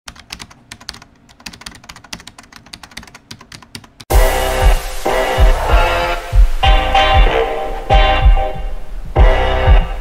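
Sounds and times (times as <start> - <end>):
typing on a computer keyboard: 0.1 - 4.1.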